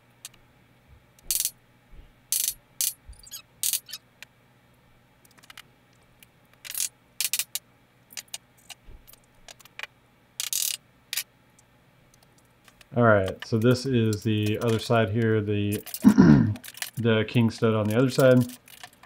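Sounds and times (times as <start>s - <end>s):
hand tools clicking and clattering: 12.7s - 19.0s.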